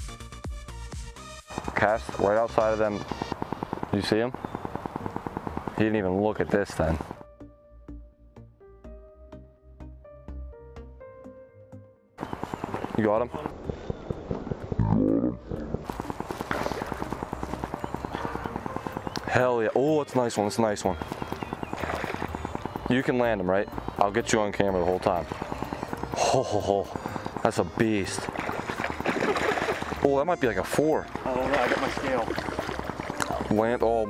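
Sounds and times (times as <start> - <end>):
fish thrashing and splashing water: 15.9 - 18.5, 21.6 - 22.5, 28.1 - 30.1, 31.2 - 33.5.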